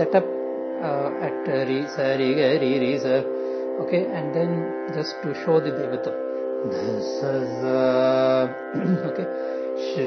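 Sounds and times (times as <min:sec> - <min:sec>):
steady drone: 0:00.0 - 0:10.0
man singing a held note: 0:06.6 - 0:09.2.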